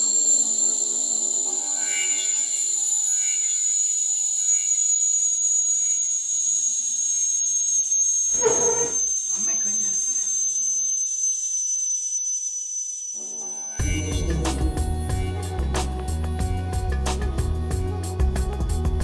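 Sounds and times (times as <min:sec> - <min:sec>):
kettle whistling: 0:00.0 - 0:14.0.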